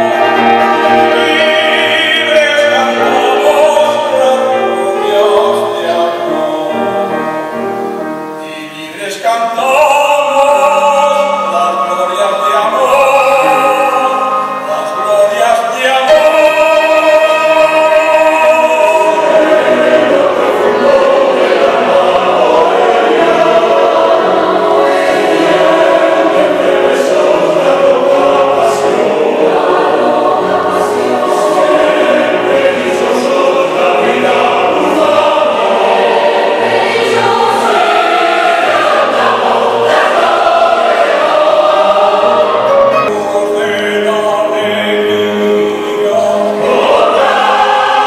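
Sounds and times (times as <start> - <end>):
mixed choir singing: 0.0 - 48.0
piano accompaniment: 0.0 - 48.0.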